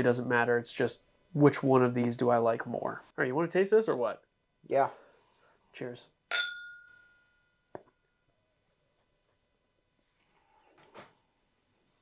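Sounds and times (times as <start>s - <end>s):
glasses clinking: 6.3s - 7.2s.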